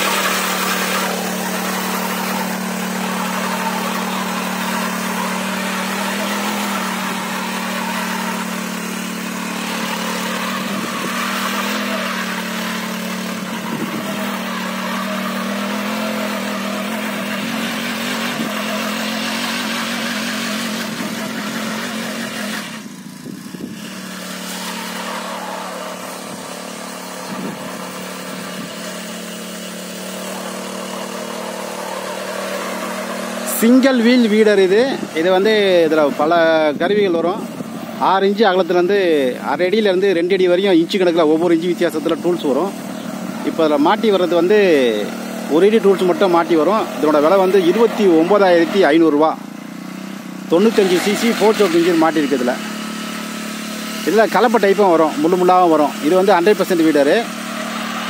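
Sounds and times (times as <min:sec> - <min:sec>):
small petrol engine running: 0:00.0 - 0:58.0.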